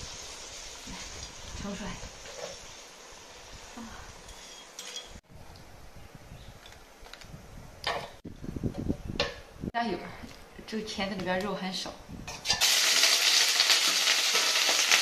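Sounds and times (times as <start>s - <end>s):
faint hiss: 0.0s - 5.2s.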